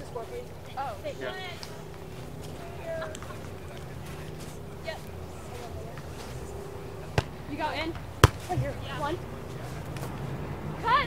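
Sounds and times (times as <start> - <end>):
volleyball smack: 7.2 - 7.4, 8.2 - 8.7.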